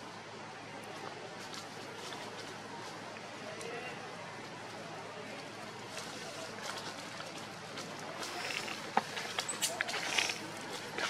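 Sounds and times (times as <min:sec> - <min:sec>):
dry leaves crackling and rustling: 0:01.3 - 0:11.0
indistinct voices: 0:02.9 - 0:11.0.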